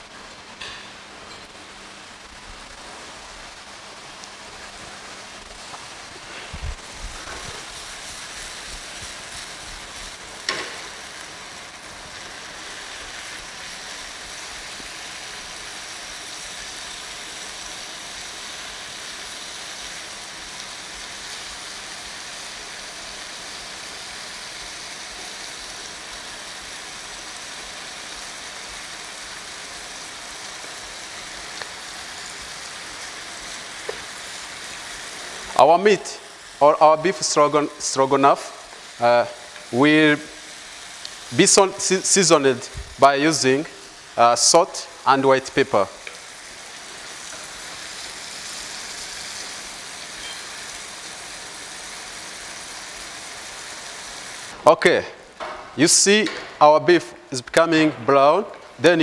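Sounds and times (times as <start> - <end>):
meat sizzling in oil: 0.0 - 54.6.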